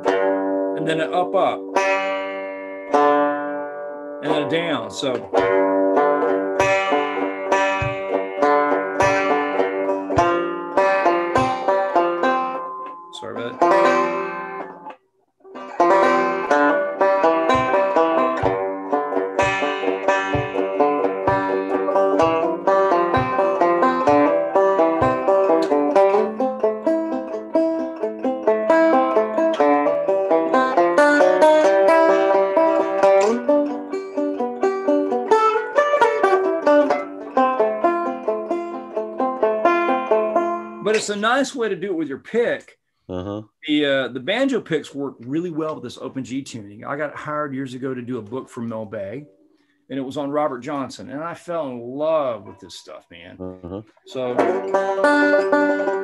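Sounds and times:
flatpicked banjo: 0.0 - 42.5, 43.7 - 56.0.

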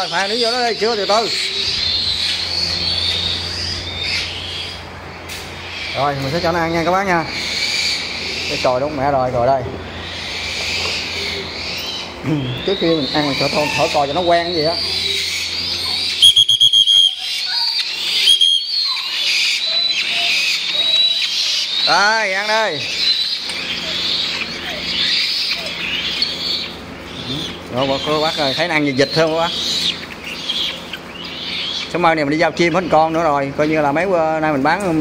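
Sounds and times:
bird chicks begging cries: 0.0 - 35.0.

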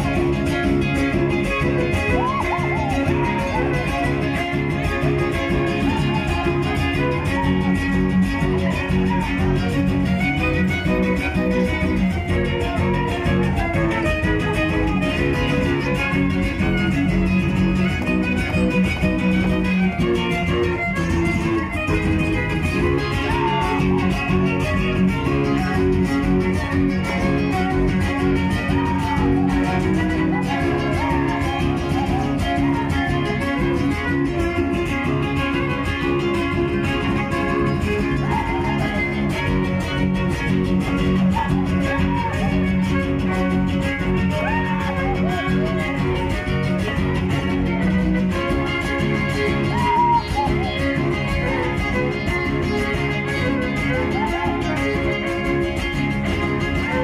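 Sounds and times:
fiddle melody: 0.0 - 57.0
plucked guitars: 0.0 - 57.0
string trio through pa: 0.0 - 57.0.

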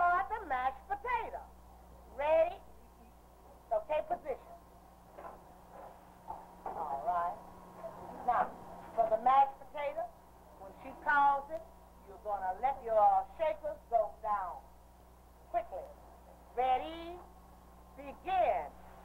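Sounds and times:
woman speaking: 0.0 - 1.5, 2.1 - 4.6, 6.7 - 14.7, 15.5 - 17.3, 18.0 - 18.8
steady low hum: 0.0 - 19.0.

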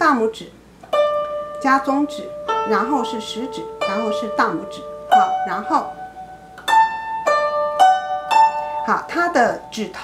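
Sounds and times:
zither strings plucked slowly: 0.8 - 10.0.

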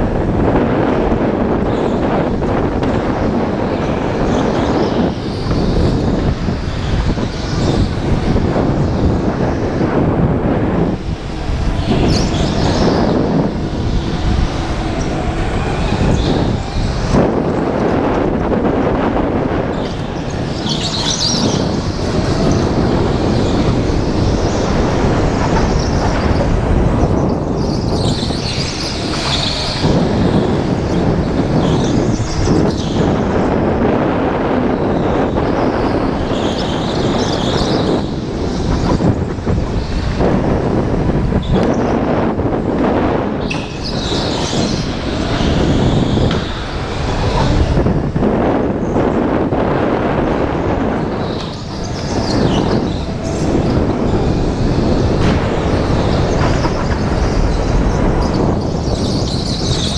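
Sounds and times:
go-kart drive and tyre noise: 0.0 - 59.9
wind buffeting on microphone: 0.0 - 59.9.

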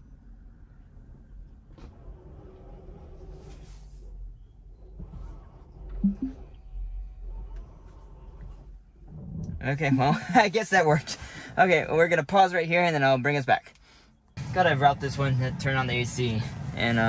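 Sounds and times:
low two-note hum: 6.0 - 6.9.

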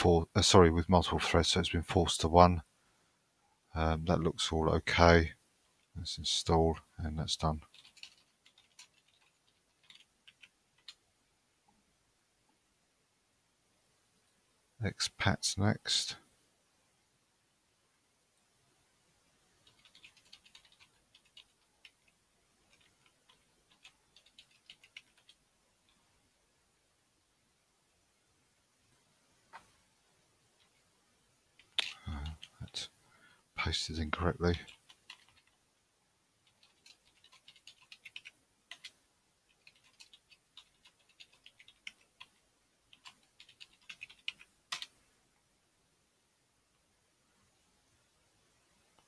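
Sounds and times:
computer keyboard typing: 7.6 - 11.0, 19.6 - 26.0, 31.6 - 32.8, 34.5 - 35.6, 36.4 - 45.0.

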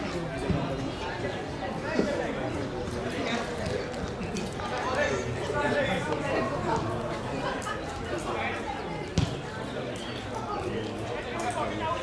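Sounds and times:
hubbub of voices: 0.0 - 12.0.

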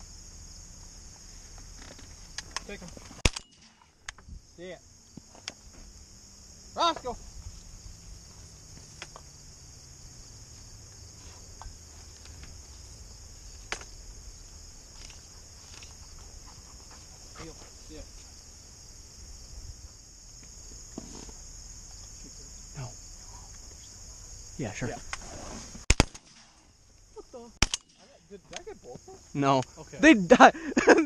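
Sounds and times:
rustles: 0.0 - 30.0.

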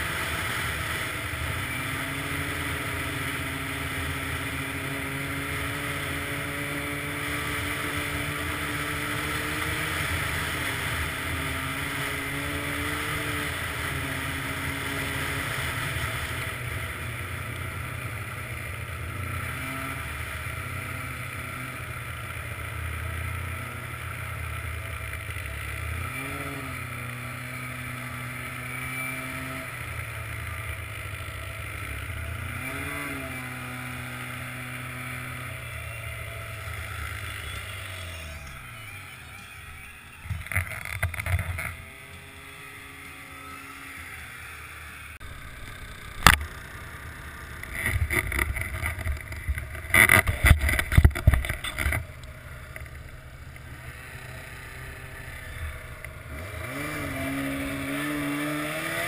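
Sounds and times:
snowmobile engine running: 0.0 - 59.0.

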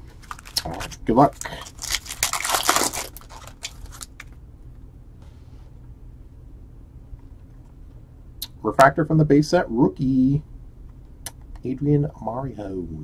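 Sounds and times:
foil wrapper crinkling: 0.0 - 4.4.

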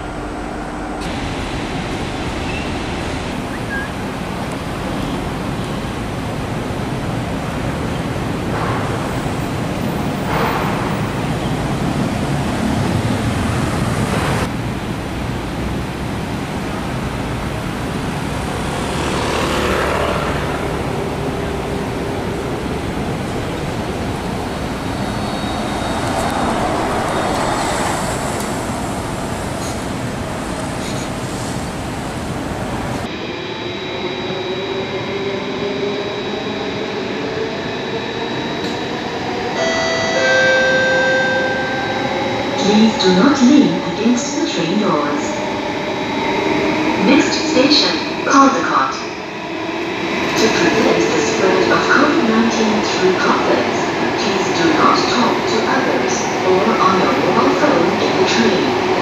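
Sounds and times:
bus engine moving off: 0.0 - 39.2
metro train carriage running noise: 0.0 - 59.0
road traffic: 0.0 - 59.0.

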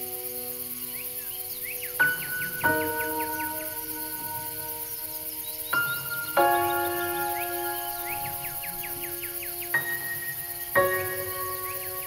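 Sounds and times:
bird chirping: 0.0 - 12.0
soft background music: 0.0 - 12.0.

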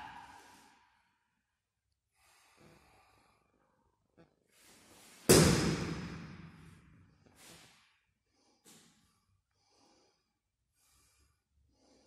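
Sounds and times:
soft breath: 7.3 - 12.0.

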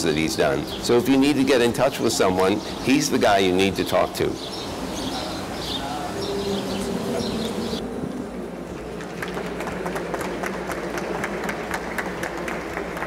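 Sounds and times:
birdsong: 0.0 - 7.8
people clapping: 8.7 - 13.0.

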